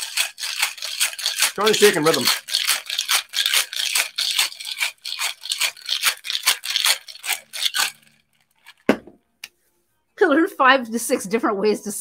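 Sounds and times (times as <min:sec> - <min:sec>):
ice rattling in cocktail shaker: 0:00.0 - 0:09.0.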